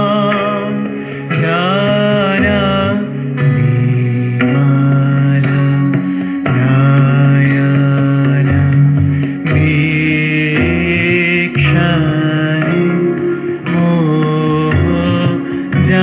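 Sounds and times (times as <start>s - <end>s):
electronic keyboard chords: 0.0s - 16.0s
man singing a hymn: 0.0s - 16.0s.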